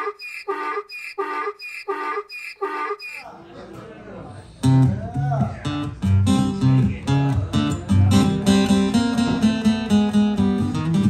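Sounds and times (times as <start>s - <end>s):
donkey braying: 0.0s - 3.3s.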